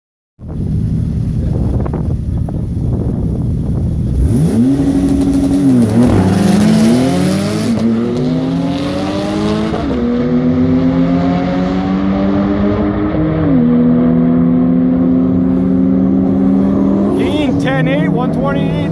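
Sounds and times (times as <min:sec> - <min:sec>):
sports car engine accelerating: 0:00.4 - 0:18.9.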